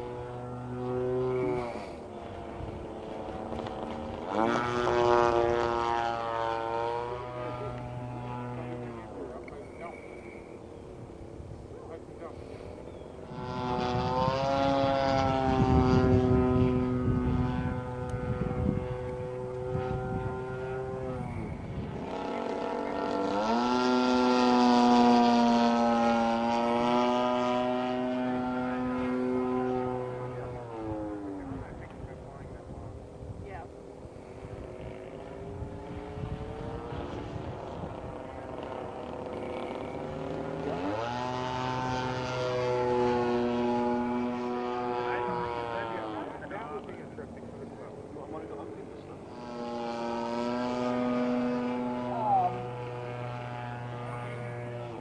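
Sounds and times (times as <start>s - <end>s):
model plane engine buzzing: 0.0s - 55.0s.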